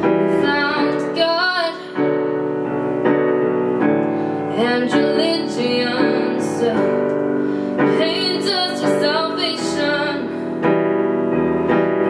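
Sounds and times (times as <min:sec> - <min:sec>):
woman singing: 0:00.0 - 0:02.3, 0:04.5 - 0:10.6
digital piano chords: 0:00.0 - 0:12.0.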